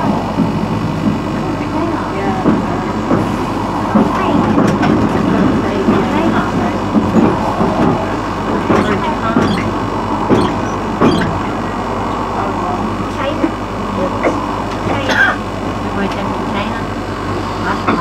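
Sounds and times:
tram rumbling on track: 0.0s - 18.0s
wheels clicking on rails: 0.0s - 18.0s.

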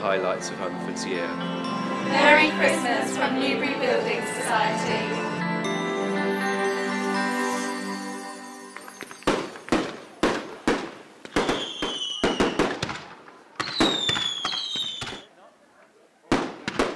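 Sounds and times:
music: 0.0s - 10.1s
fireworks bangs: 8.8s - 15.3s, 16.3s - 16.9s
whistling fireworks: 8.8s - 15.3s.

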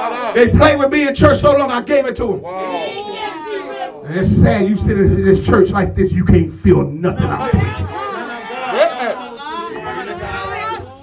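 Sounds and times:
voices talking over one another: 0.0s - 11.0s.

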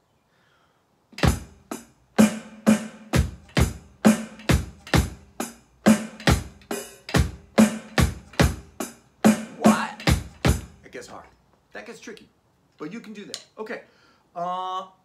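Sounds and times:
electronic drum kit rock beat: 1.2s - 10.9s.

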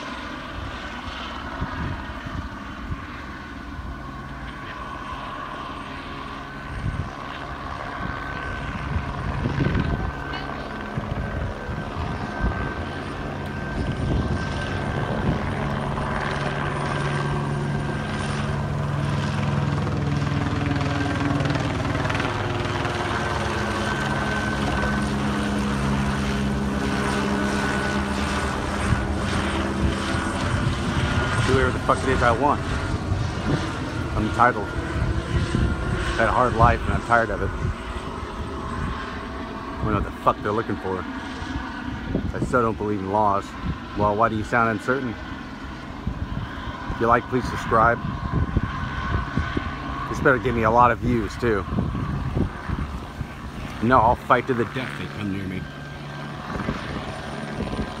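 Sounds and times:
helicopter rotor drone: 0.0s - 58.0s.

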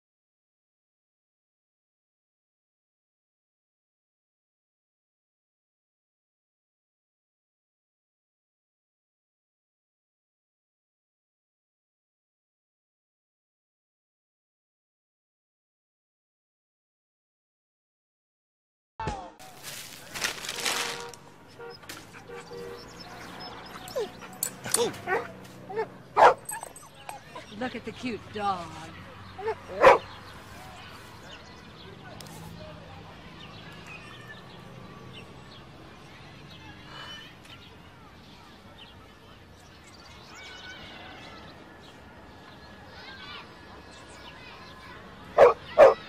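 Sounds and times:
dog barking: 21.7s - 27.4s, 29.4s - 30.1s, 45.3s - 46.0s
small dog whimpering and yipping: 23.4s - 25.8s, 26.4s - 27.5s.

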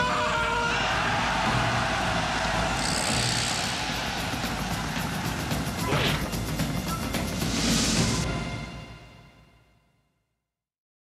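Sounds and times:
trailer music: 0.0s - 10.0s.

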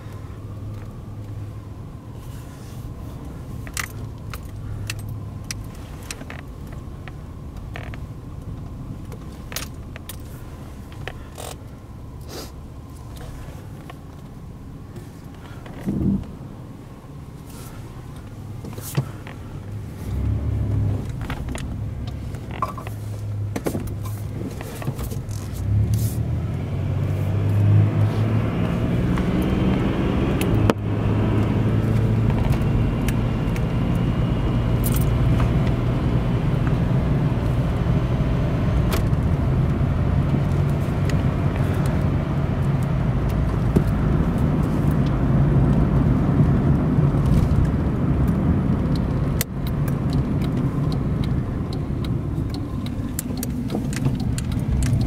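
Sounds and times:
car engine running: 0.0s - 55.0s.

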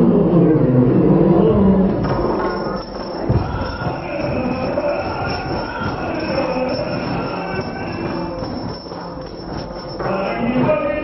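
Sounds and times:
steady held tones: 2.0s - 11.0s
barrel drum playing: 2.1s - 10.6s.

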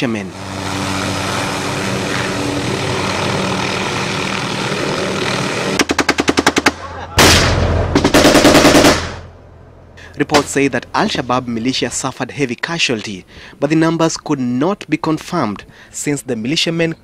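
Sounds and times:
helicopter droning hum: 0.0s - 12.4s
machine-gun fire: 5.8s - 9.3s
heavy shot or blast: 6.2s - 9.3s.

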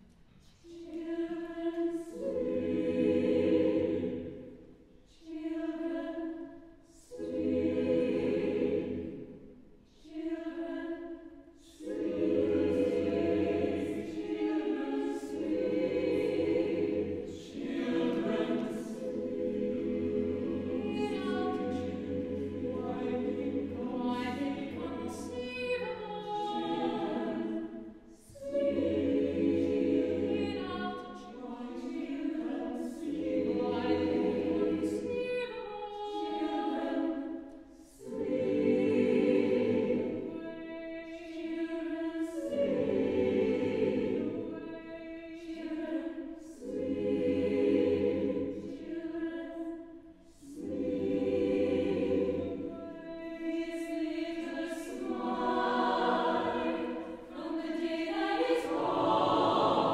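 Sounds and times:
choir singing held chords: 0.6s - 59.9s.

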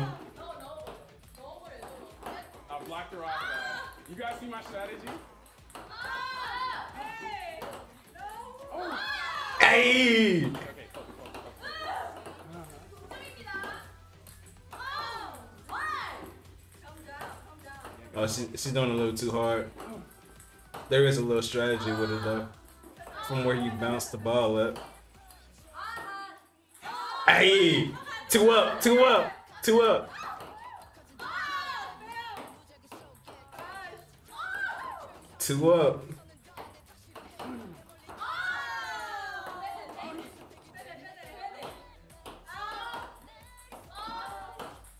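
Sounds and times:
young women's excited exclamations: 5.9s - 7.6s, 8.2s - 10.4s, 11.6s - 12.2s, 14.8s - 16.3s, 25.8s - 28.3s, 30.1s - 32.4s, 33.6s - 35.2s, 38.2s - 39.9s, 42.5s - 43.1s, 43.9s - 44.6s.

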